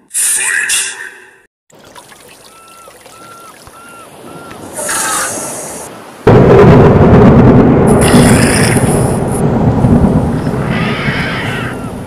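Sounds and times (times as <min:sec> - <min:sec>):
loud rumbling: 0:06.3 - 0:12.0.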